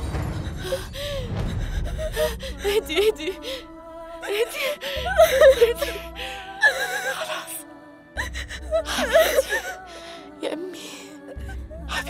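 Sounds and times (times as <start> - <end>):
girl crying and sobbing: 0.3 - 12.0.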